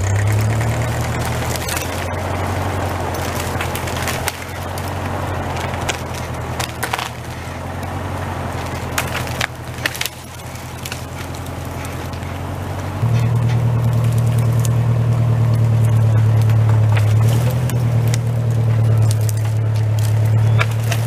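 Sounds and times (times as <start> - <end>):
tractor engine running: 0.0 - 21.0
wood cracking: 0.0 - 21.0.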